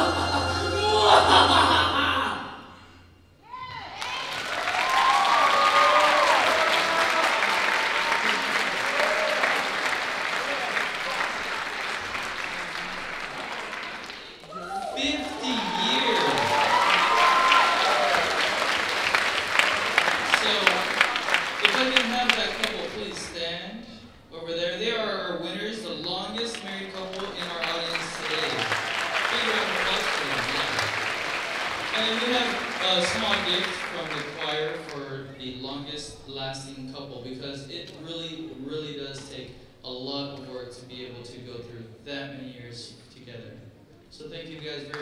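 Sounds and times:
choir holding a chord: 0:00.0 - 0:02.5
audience cheering: 0:00.0 - 0:02.6, 0:03.5 - 0:23.3, 0:26.1 - 0:35.0
audience applause: 0:04.0 - 0:23.4, 0:26.1 - 0:35.2.

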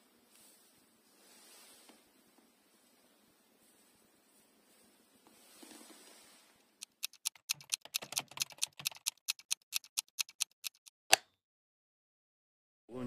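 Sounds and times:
rapid sharp clicks: 0:06.8 - 0:11.0.

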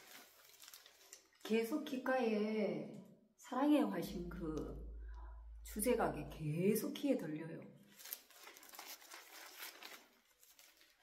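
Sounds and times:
faint crinkling rustle: 0:00.0 - 0:01.5, 0:07.9 - 0:11.0.

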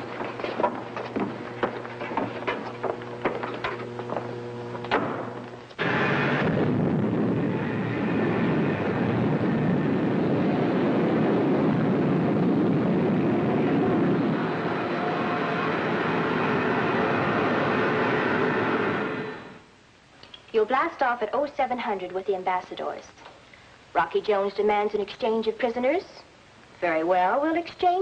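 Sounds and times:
rocket engine roar: 0:00.6 - 0:19.7.

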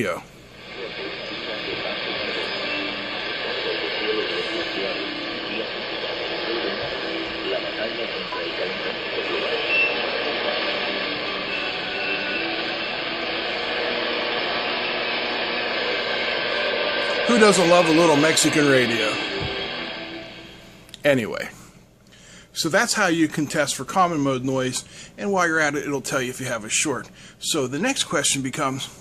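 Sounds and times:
radio static and interference: 0:00.0 - 0:20.8
distant radio broadcast voice: 0:00.0 - 0:21.6.

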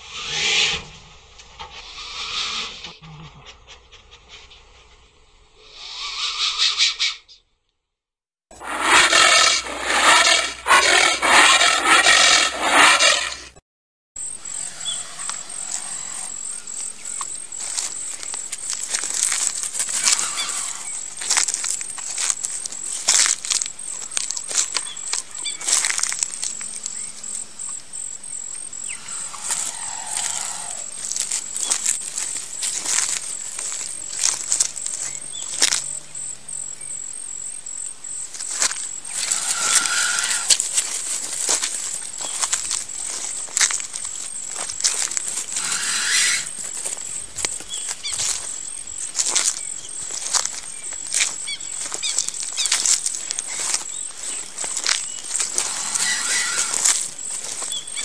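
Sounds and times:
crackles of bark and dry leaves: 0:08.5 - 0:13.5, 0:14.4 - 0:27.6, 0:28.4 - 0:36.0, 0:38.2 - 0:58.0
high insect drone: 0:14.2 - 0:58.0.

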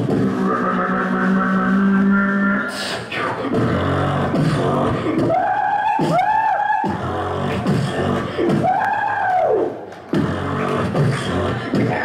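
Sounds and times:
long steady vocal tone: 0:00.0 - 0:08.7
beatboxing beats: 0:00.0 - 0:12.0.

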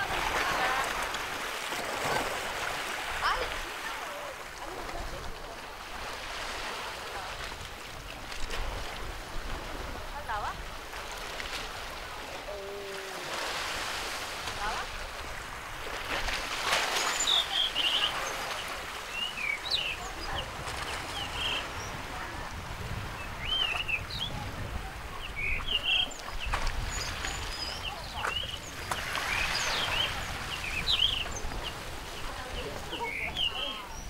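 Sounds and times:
sea waves: 0:00.0 - 0:34.0
wind: 0:00.0 - 0:34.0
small birds chirping and whistling: 0:19.1 - 0:20.2, 0:23.2 - 0:24.4, 0:25.2 - 0:31.8, 0:32.9 - 0:34.0.

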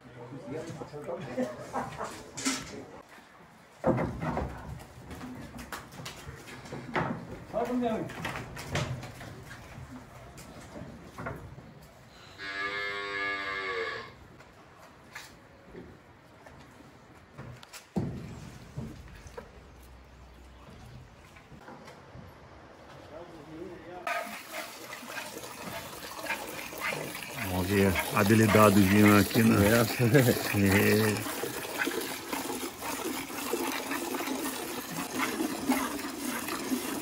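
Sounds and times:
knocks and thumps: 0:03.8 - 0:06.1
cattle mooing: 0:12.2 - 0:14.2.

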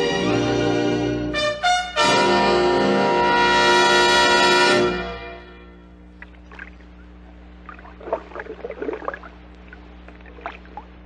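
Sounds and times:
steady low hum: 0:01.2 - 0:11.0
faint splashing water: 0:06.1 - 0:11.0.

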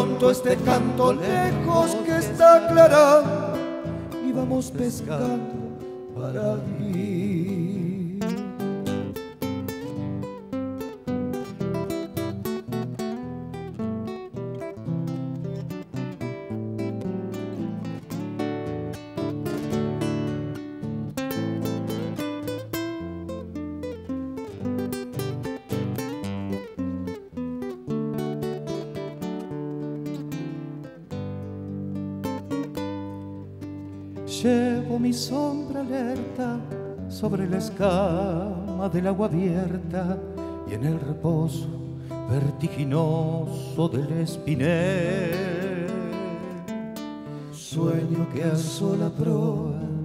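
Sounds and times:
acoustic guitar plucking and strumming: 0:00.0 - 0:50.0.

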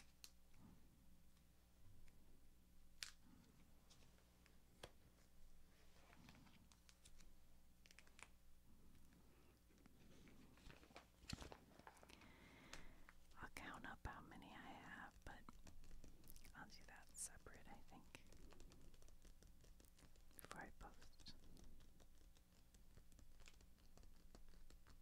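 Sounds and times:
faint whispering: 0:12.8 - 0:18.9, 0:20.3 - 0:21.9.

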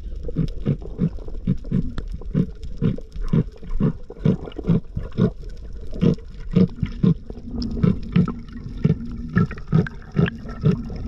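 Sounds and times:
rumble of moving water: 0:00.0 - 0:11.0.

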